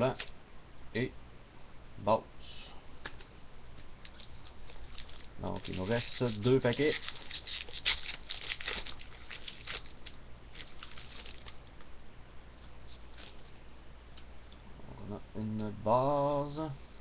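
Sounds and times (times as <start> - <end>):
wrapper tearing and crinkling: 4.1 - 11.7.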